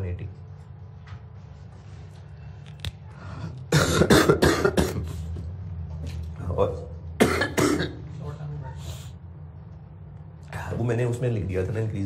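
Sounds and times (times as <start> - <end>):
man coughing: 3.7 - 5.3, 7.2 - 8.0.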